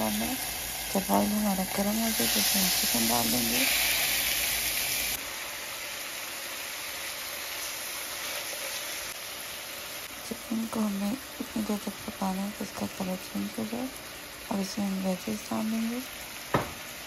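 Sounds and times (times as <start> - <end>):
chicken sizzling in hot oil: 0.0 - 17.0.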